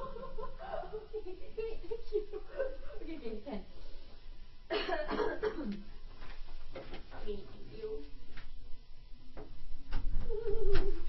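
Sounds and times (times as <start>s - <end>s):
person clearing throat: 4.7s - 5.8s
person coughing: 4.7s - 5.8s.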